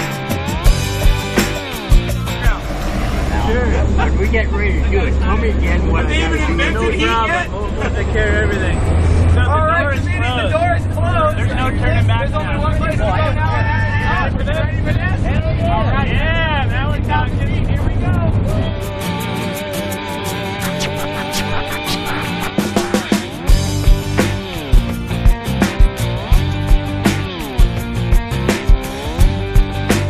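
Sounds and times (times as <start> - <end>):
background music: 0.0 - 7.4, 18.7 - 30.0
voices: 2.0 - 19.1, 20.2 - 24.4.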